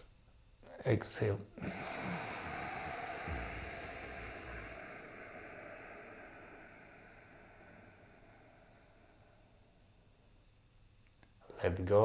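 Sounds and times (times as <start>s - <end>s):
long breathy exhale: 1.6s - 10.5s.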